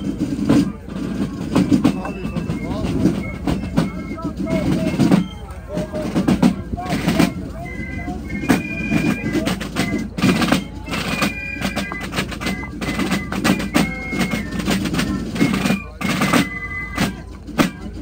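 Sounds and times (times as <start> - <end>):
high piccolo melody: 0.0 - 18.0
parade drums playing a march: 0.0 - 18.0.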